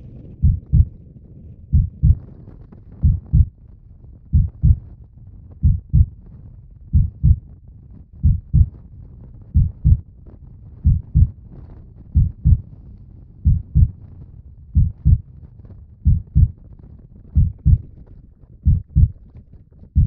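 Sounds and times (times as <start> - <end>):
heartbeat double thump: 0.4 - 0.9, 1.7 - 2.2, 3.0 - 3.5, 4.3 - 4.8, 5.6 - 6.2, 6.9 - 7.4, 8.2 - 8.7, 9.6 - 10.0, 10.8 - 11.4, 12.2 - 12.6, 13.4 - 14.0, 14.8 - 15.2, 16.0 - 16.6, 17.4 - 17.8, 18.6 - 19.2.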